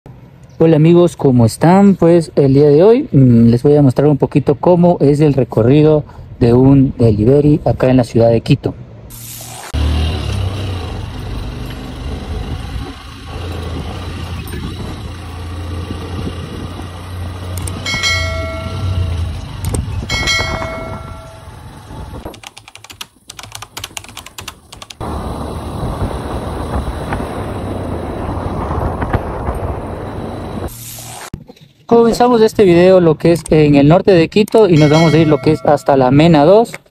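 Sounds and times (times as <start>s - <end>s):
wind and road noise: 0.1s - 36.9s
motorcycle engine running: 9.5s - 22.3s, 25.0s - 30.7s
run of clicks: 17.5s - 18.2s, 22.2s - 25.0s
short ringing chime tones: 17.8s - 19.5s, 20.1s - 21.7s, 34.8s - 36.2s.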